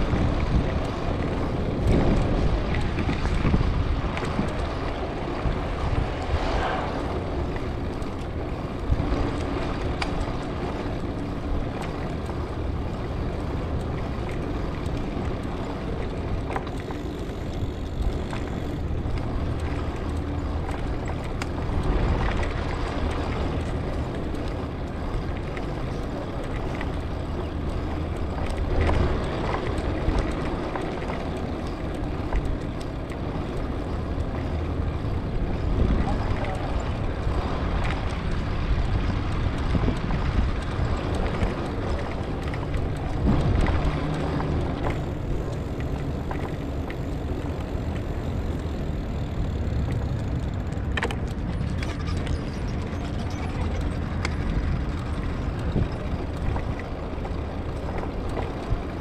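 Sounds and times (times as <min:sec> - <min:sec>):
bicycle rumbling over brick paving: 0:00.0 - 0:59.0.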